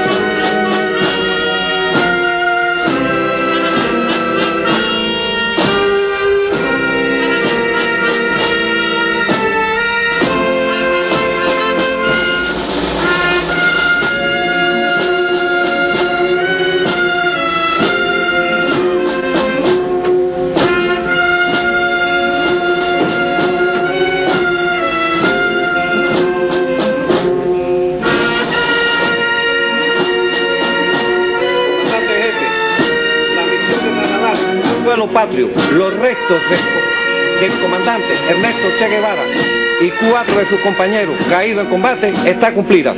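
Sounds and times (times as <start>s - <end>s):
brass band playing slow march: 0.0s - 42.9s
drum strokes: 0.0s - 42.9s.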